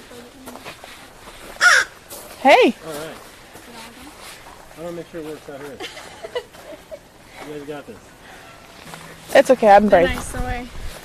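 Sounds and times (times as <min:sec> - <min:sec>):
crow cawing: 0:01.6 - 0:02.0.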